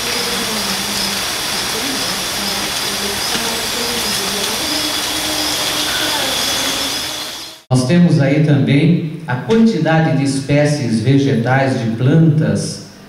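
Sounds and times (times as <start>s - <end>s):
faint chanted song: 0.0s - 7.6s
loud steady hiss: 0.0s - 8.1s.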